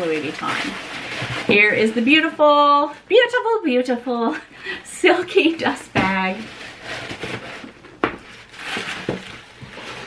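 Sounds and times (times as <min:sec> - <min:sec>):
tissue paper and fabric rustling: 0:00.0 - 0:03.4, 0:04.2 - 0:10.0.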